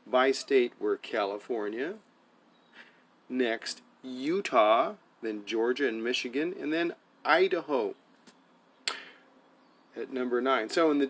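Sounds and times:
sharp click: 8.2s - 9.1s.

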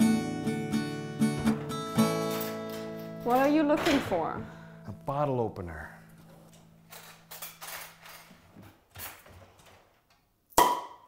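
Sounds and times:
rummaging rattles: 6.9s - 10.0s.

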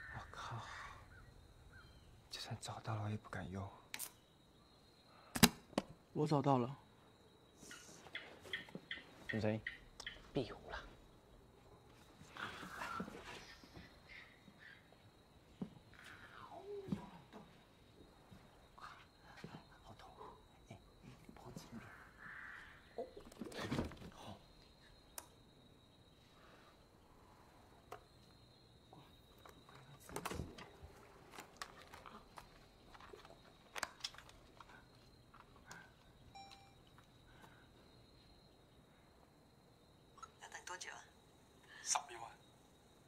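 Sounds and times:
clicks and small knocks: 29.3s - 37.1s.

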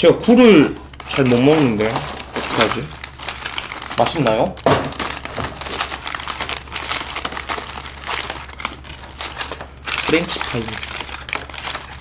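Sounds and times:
plastic wrappers crinkling: 0.3s - 12.0s
packets shuffled on wooden table: 0.6s - 12.0s.

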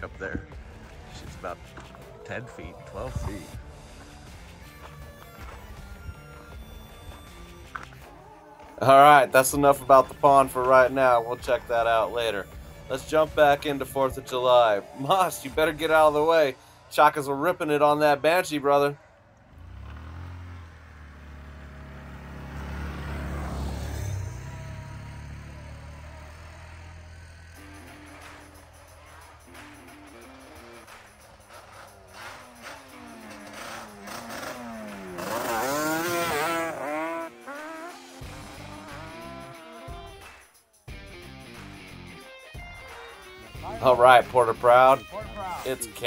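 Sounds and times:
background music: 0.0s - 21.0s, 22.7s - 46.0s
quad engine passing: 0.0s - 40.3s.

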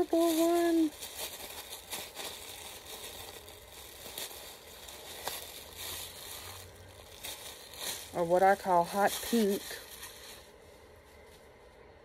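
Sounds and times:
plastic package crinkling: 0.0s - 11.3s
small crackles: 0.0s - 11.8s.

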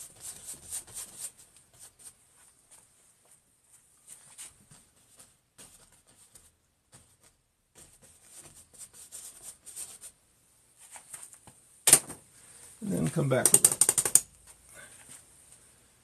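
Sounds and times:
rapid rattling clicks: 13.4s - 14.3s.

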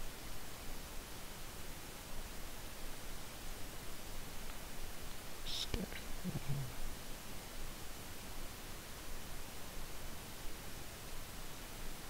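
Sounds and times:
background hiss: 0.0s - 12.0s
person muttering: 5.5s - 6.8s.

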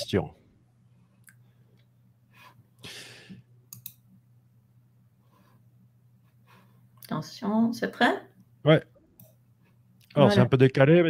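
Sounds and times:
low steady hum: 0.0s - 11.0s
faint clicks: 3.7s - 4.0s.

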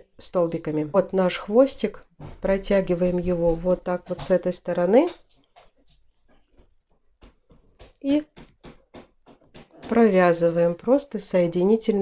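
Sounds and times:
person speaking: 0.0s - 5.3s, 9.7s - 12.0s.

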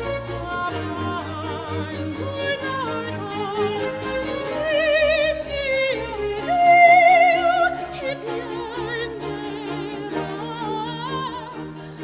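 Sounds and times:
baroque strings and harp: 0.0s - 12.0s
soprano singing opera aria: 0.0s - 12.0s.

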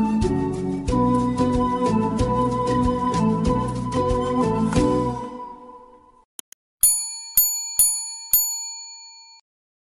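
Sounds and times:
background music: 0.0s - 6.2s
bright bell dings: 6.8s - 9.4s.

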